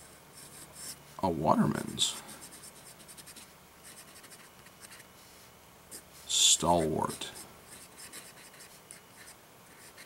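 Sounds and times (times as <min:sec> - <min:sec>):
fountain pen scratching on paper: 0:02.2 - 0:05.1, 0:07.1 - 0:10.0.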